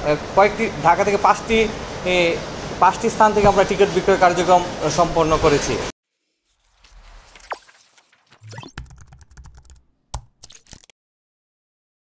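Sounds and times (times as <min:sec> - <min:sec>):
keyboard typing clicks: 0:08.4 - 0:10.9.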